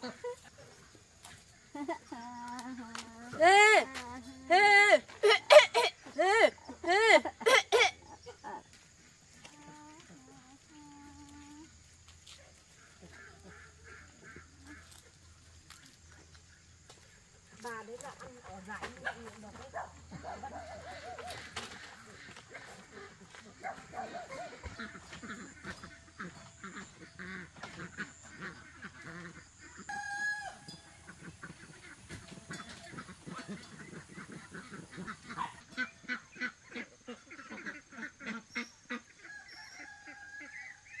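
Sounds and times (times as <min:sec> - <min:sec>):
poultry calling: 0:00.0 - 0:41.0.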